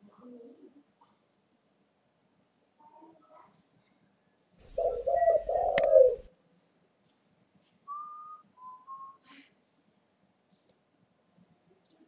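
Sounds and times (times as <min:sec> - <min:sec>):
dove cooing: 0:00.0 - 0:01.2, 0:04.6 - 0:06.3.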